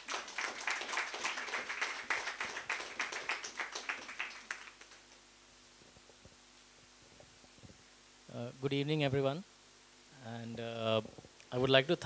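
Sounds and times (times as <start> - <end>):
audience applauding: 0.0 - 5.2.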